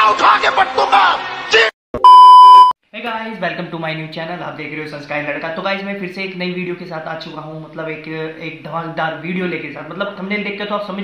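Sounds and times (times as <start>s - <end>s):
censor bleep tone: 2.0s - 2.8s.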